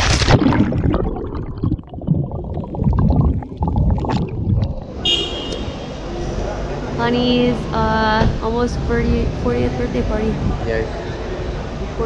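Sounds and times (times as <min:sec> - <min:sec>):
underwater rumble and bubbling: 0:00.0 - 0:06.4
traffic: 0:04.3 - 0:12.0.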